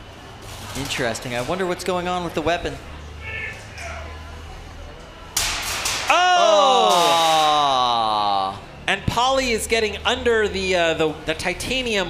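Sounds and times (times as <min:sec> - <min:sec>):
metal impacts and grinding: 0:05.4 - 0:06.2.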